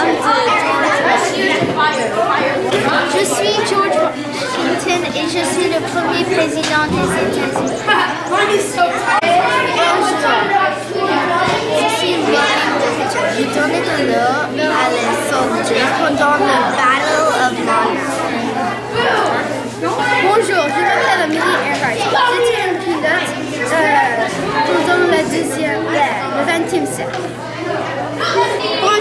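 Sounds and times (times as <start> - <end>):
children's voices chattering: 0.0 - 29.0.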